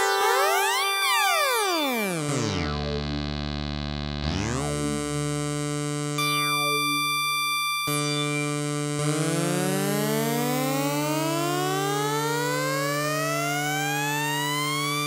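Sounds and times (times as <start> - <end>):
synthesizer note gliding upward: 7.9 - 8.6.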